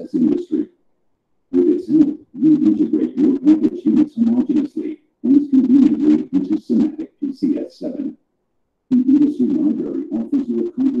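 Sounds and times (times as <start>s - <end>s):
muffled low voice-over speech: 0.0s - 0.7s, 1.5s - 8.2s, 8.9s - 11.0s.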